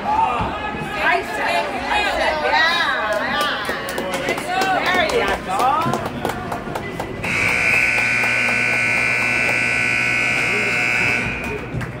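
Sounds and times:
voices: 0:00.0 - 0:12.0
scoreboard buzzer blast: 0:07.2 - 0:11.7.

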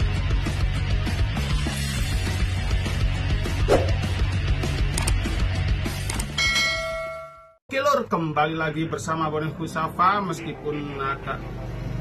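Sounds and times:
bell chime ringing: 0:06.4 - 0:07.6.

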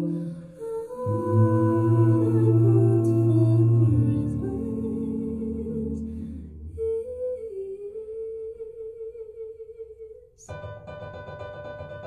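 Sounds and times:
person singing long note: 0:00.0 - 0:07.7.

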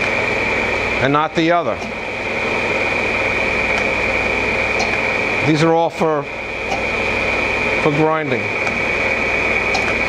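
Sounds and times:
grinder mechanical hiss: 0:00.0 - 0:10.0
high whine: 0:00.0 - 0:10.0.

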